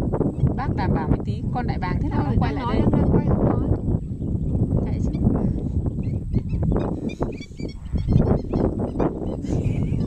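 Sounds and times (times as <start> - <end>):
steady low rumble: 0.0 - 10.0
flamingos calling: 6.0 - 10.0.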